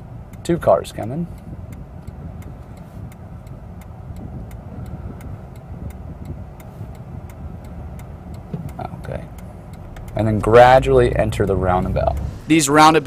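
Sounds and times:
car idling: 0.0 - 13.0
turn signal ticking: 0.0 - 13.0.

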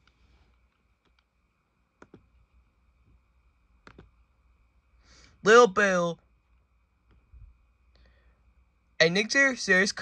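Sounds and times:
laptop clicks: 2.0 - 2.3, 3.8 - 4.2.

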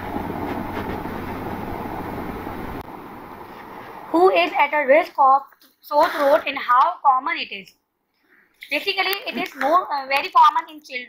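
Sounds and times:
low hum: 0.0 - 4.2.

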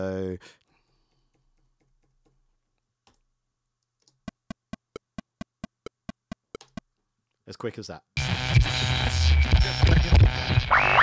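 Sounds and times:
keyboard key clicks: 4.1 - 6.8.

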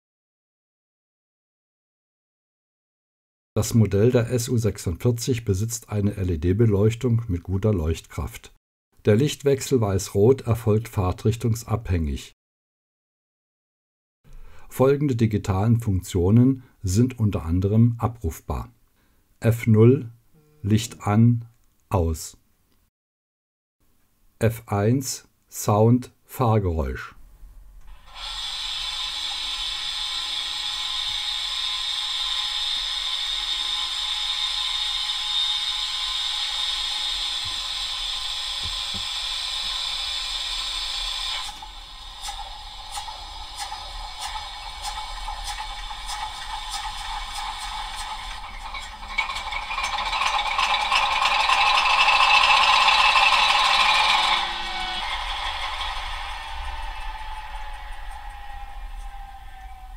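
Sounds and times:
rattling clicks: 42.2 - 54.4.

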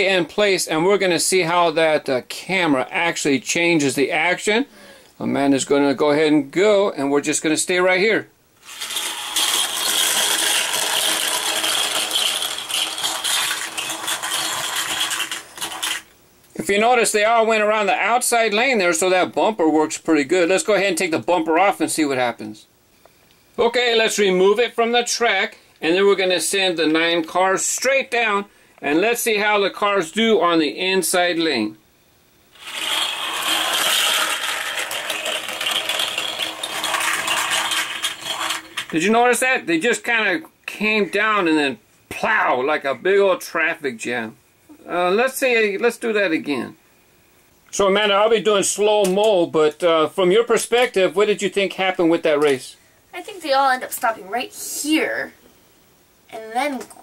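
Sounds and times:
toy cars clattering on plastic track: 8.6 - 16.1, 32.6 - 39.0.

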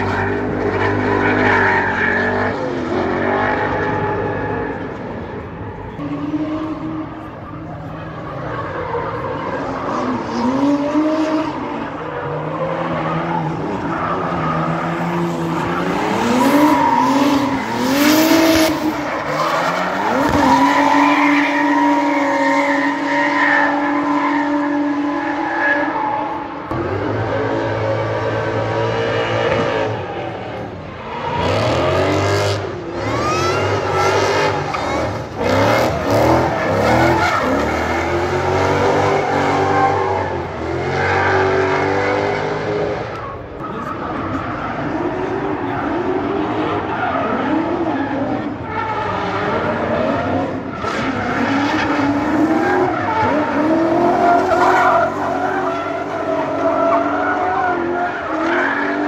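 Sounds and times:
car engines at high revs: 0.0 - 59.0.

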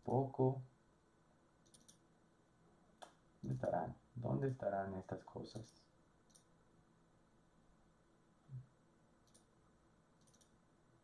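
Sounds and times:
faint mouse clicks: 1.6 - 2.0, 5.6 - 6.5, 9.2 - 9.5, 10.2 - 10.6.

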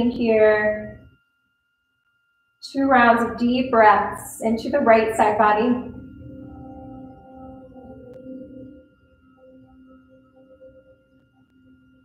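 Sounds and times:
ambient music with ringing tones: 0.0 - 12.0.

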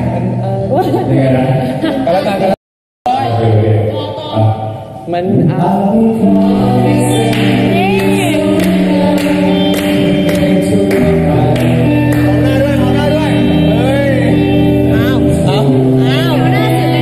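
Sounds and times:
electric guitar strumming: 0.0 - 17.0
people singing together: 5.6 - 17.0.

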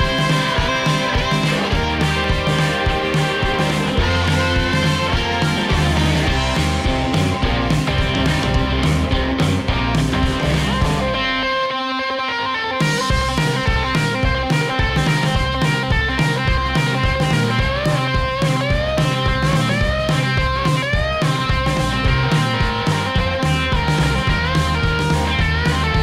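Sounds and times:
rock music with electric guitar: 0.0 - 26.0.

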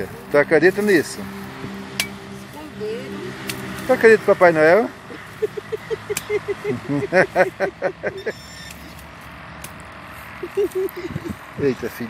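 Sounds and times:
distant road traffic rumble: 0.0 - 12.0
person laughing: 5.0 - 8.4, 10.4 - 11.5.

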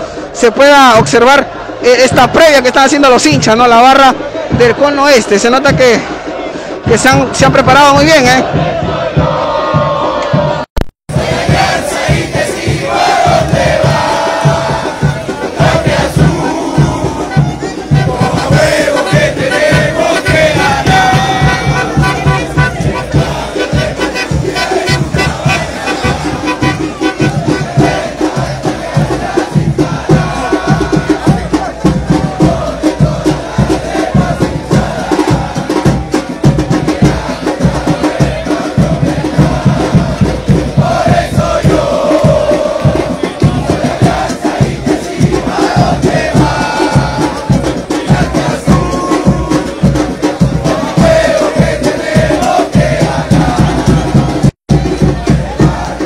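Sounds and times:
supporters chanting in unison: 0.0 - 56.0
fast drumming: 0.3 - 56.0.

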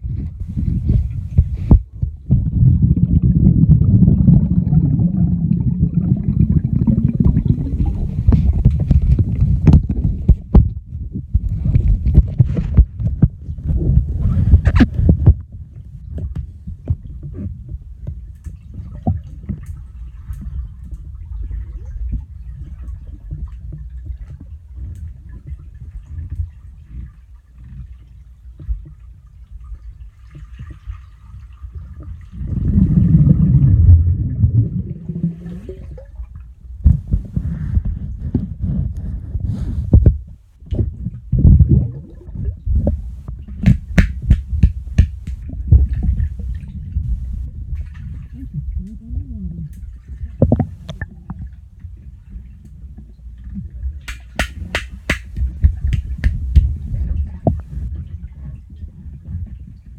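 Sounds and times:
underwater sloshing rumble: 0.0 - 59.9
knocks and bumps: 42.8 - 46.2, 54.1 - 57.8.

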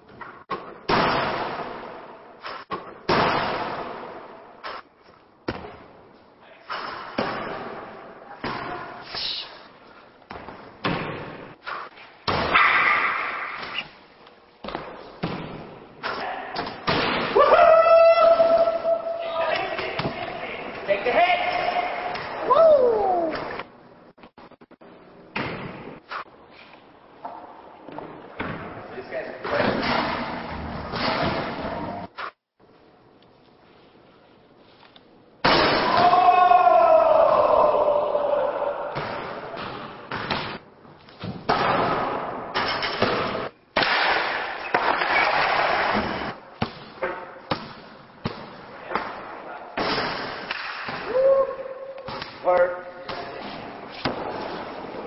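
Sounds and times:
sharp thuds echoing in hall: 0.5 - 4.5, 10.3 - 13.8, 14.6 - 20.4, 35.4 - 37.5, 38.6 - 55.0.

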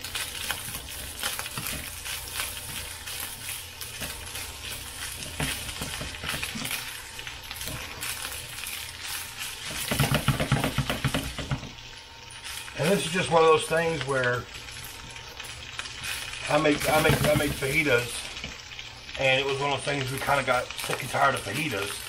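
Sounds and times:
spatula stirring and scraping: 0.0 - 13.5, 14.7 - 19.2
food sizzling in a skillet: 0.0 - 22.0.

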